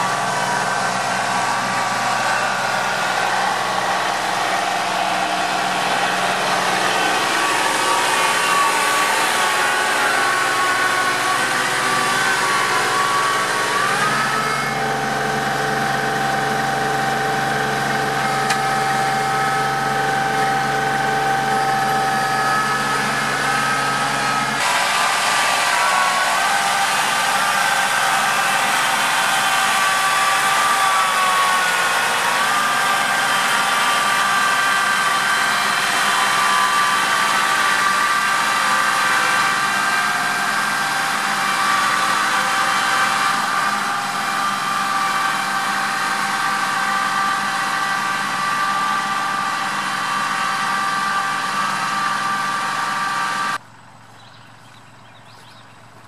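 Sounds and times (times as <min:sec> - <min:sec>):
tractor diesel engine under load: 0:00.0 - 0:56.0.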